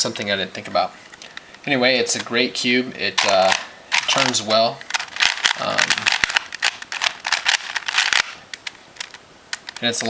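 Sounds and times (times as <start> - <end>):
puzzle cube plastic clicks: 3.1 - 10.0.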